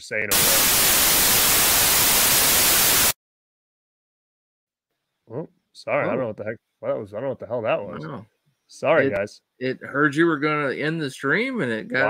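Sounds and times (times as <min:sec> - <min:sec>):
television static hiss: 0:00.3 - 0:03.2.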